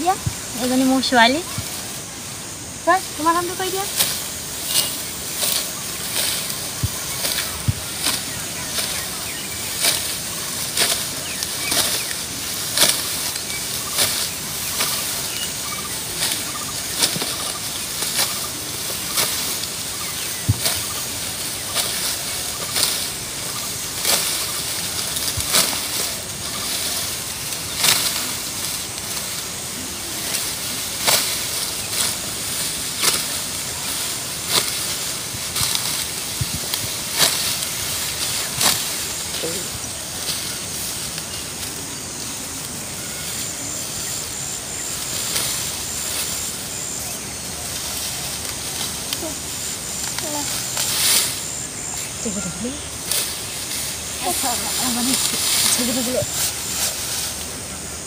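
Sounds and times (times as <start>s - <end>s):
dry rice stalks rustling: 0.0s - 58.0s
steady hiss: 0.0s - 58.0s.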